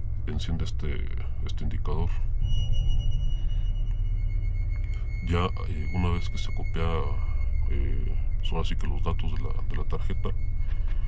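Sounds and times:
dark low droning music: 0:00.0 - 0:11.0
high sonar-like ringing tone: 0:00.0 - 0:11.0.

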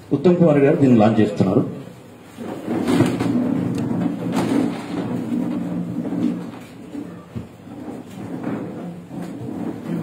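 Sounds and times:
sharp knocks: 0:02.4 - 0:10.0.

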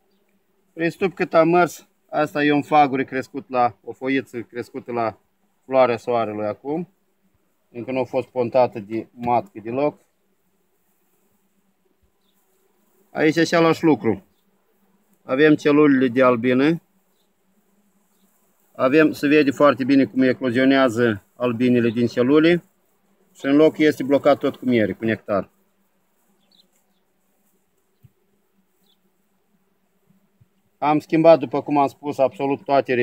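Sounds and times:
honeybees humming: 0:00.0 - 0:33.0.

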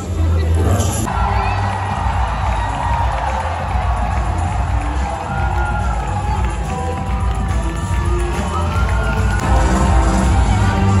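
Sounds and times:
bass-heavy music over loudspeakers: 0:00.0 - 0:11.0
crowd cheering and shouting: 0:00.6 - 0:11.0.

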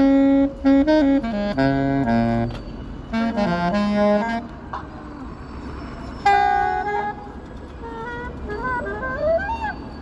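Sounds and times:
saxophone notes: 0:00.0 - 0:04.6, 0:06.2 - 0:10.0
street hum: 0:00.0 - 0:10.0.

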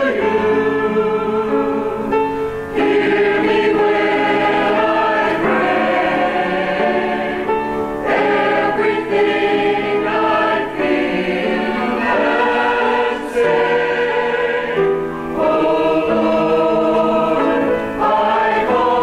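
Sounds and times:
mixed choir singing: 0:00.0 - 0:19.0.

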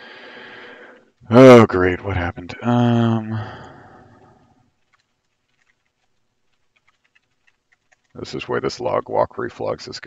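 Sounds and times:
computer keyboard typing: 0:04.8 - 0:08.3.

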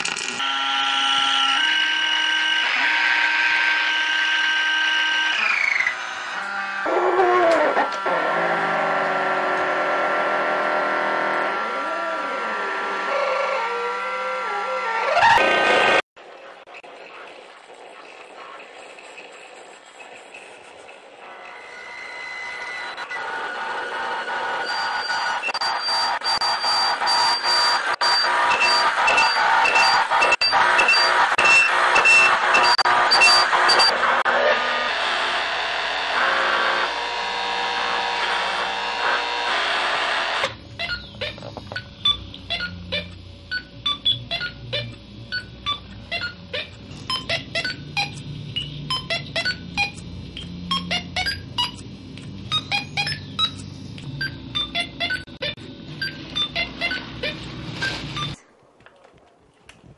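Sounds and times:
high electronic beeps: 0:24.6 - 0:33.9, 0:40.8 - 0:46.4, 0:47.1 - 0:51.8, 0:52.5 - 0:58.4
short chirping blips: 0:52.5 - 0:57.0.

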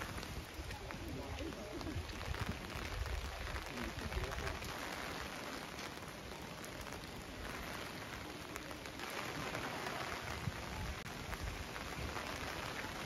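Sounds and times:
rain on paving and umbrellas: 0:00.0 - 0:13.0.

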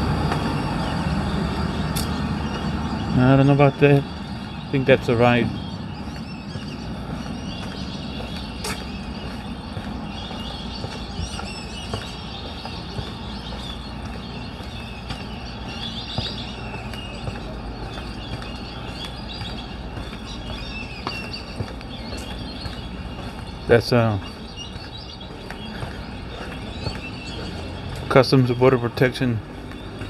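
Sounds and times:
birds chirping faintly: 0:00.0 - 0:30.0
low rumble of traffic: 0:00.0 - 0:30.0.

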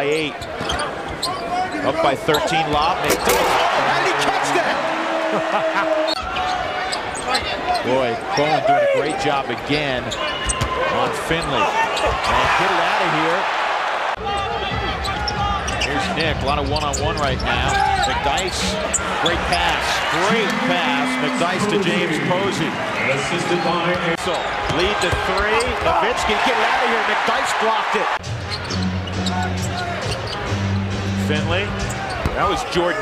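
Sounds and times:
arena crowd noise: 0:00.0 - 0:33.0
shoe squeaks on a court: 0:00.1 - 0:01.6, 0:28.5 - 0:30.5.

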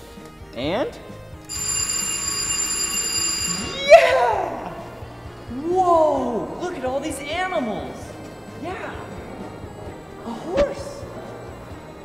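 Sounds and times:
electric bell ringing: 0:01.5 - 0:05.6.

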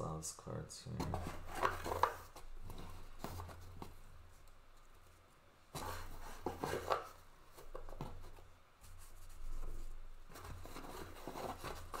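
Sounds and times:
cards rustling against cardboard box: 0:01.0 - 0:04.1, 0:05.8 - 0:08.4, 0:09.3 - 0:12.0.

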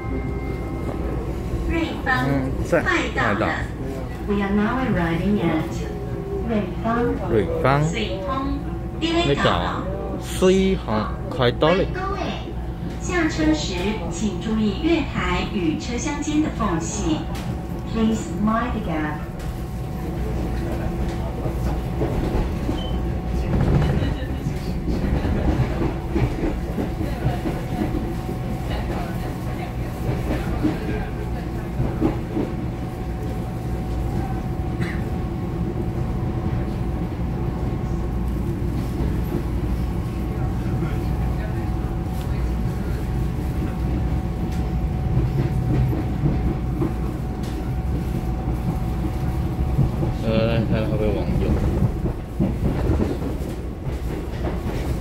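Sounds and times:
train wheel rumble: 0:00.0 - 0:55.0.

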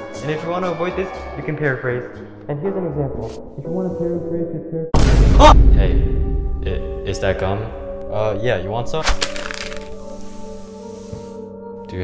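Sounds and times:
background music with held tones: 0:00.0 - 0:04.9, 0:06.2 - 0:12.0.

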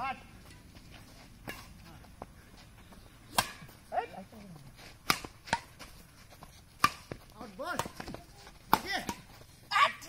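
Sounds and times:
racket hitting shuttlecock: 0:03.3 - 0:03.8, 0:05.0 - 0:05.9, 0:06.8 - 0:09.3.

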